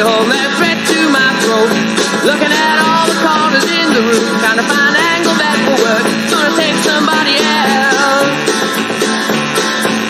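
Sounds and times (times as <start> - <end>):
rock band guitars playing: 0.0 - 10.0.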